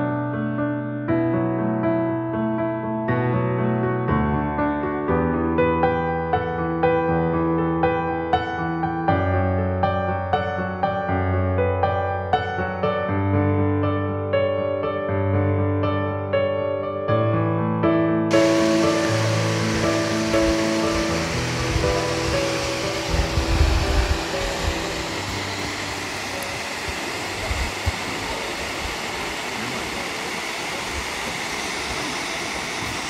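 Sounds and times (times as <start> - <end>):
soft piano music: 0.0 - 27.6
waterfall rushing: 18.3 - 33.0.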